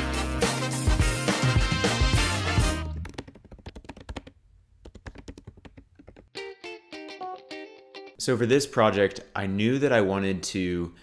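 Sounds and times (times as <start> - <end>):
computer keyboard typing: 3.0 - 6.3.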